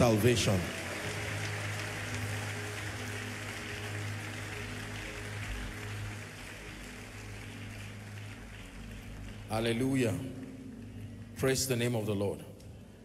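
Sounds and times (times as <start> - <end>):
congregation clapping: 0.0 - 12.7.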